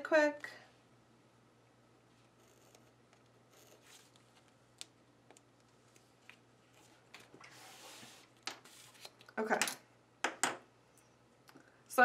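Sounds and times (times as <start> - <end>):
pages rustling: 5.9 - 9.3
book sliding on desk: 7.4 - 9.0.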